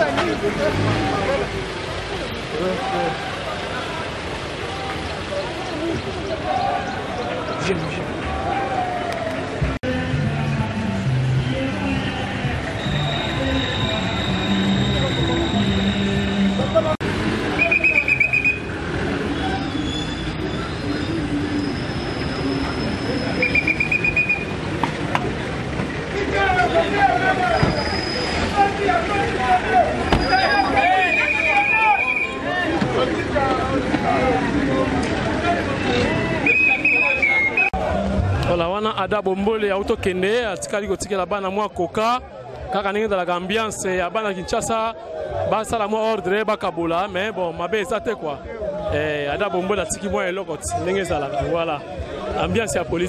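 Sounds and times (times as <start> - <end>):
cars driving slowly past: 0.0 - 53.0
indistinct voices talking: 0.0 - 53.0.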